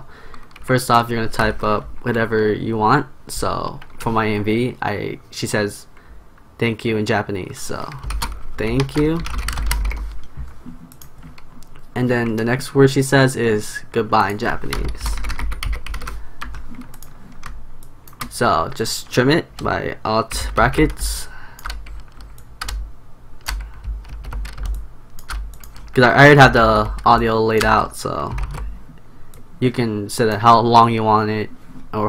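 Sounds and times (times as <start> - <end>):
keyboard typing clicks: 7.8 - 10.0, 14.7 - 18.8, 21.6 - 22.8, 23.4 - 26.0, 26.6 - 28.7.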